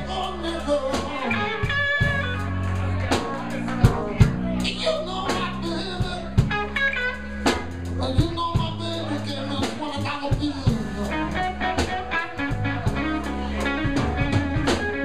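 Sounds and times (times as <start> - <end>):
electric guitar lead lines: 0.0 - 8.0, 10.6 - 15.0
bass guitar: 0.0 - 15.0
drum kit: 0.0 - 15.0.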